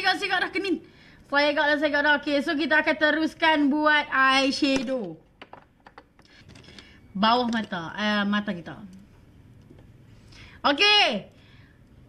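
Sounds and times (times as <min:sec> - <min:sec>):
makeup cases clicking and tapping: 0:04.7 - 0:06.8.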